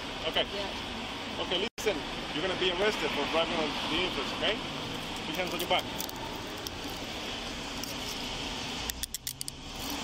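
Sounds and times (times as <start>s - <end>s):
vehicle noise: 0.0s - 10.0s
handcuffs ratcheting shut: 8.8s - 10.0s.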